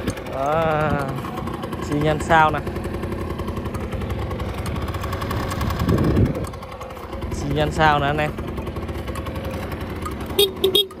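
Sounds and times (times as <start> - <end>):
scooter engine idling: 0.0 - 11.0.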